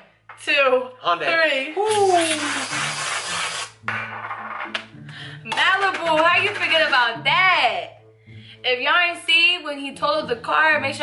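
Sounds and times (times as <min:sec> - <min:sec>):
aerosol can spraying: 0:01.9 - 0:03.8.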